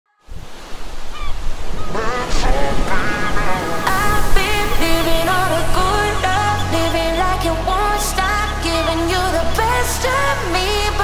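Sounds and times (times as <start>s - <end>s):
ocean surf washing: 0.3s - 11.0s.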